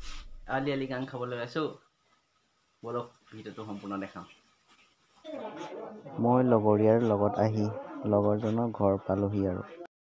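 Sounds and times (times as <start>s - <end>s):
man speaking: 5.4s - 9.7s.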